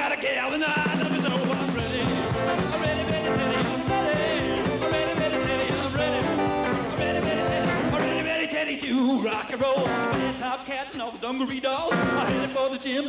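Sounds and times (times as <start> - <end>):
rock and roll band playing: 0.0 - 13.0.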